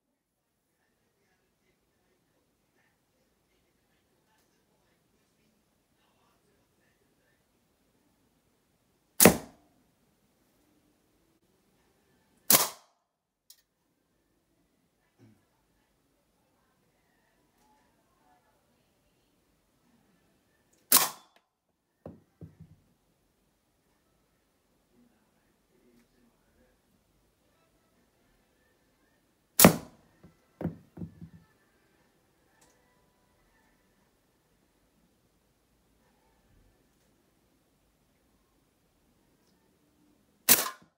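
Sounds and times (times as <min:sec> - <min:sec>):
slingshot ball hitting can: 0:09.2 - 0:09.6, 0:29.6 - 0:30.0, 0:40.5 - 0:40.8
slingshot shot cracking: 0:09.2 - 0:09.6, 0:12.5 - 0:12.9, 0:20.9 - 0:21.4, 0:29.6 - 0:30.0, 0:40.5 - 0:40.9.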